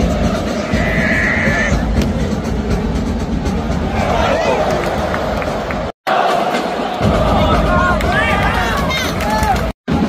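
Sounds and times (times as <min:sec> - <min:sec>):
fans shouting: 0:00.0 - 0:10.0
stadium crowd din: 0:00.0 - 0:10.0.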